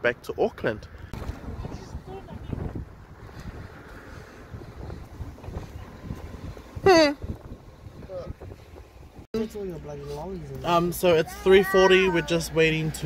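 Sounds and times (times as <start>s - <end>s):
wind buffeting microphone: 0.8s - 9.3s.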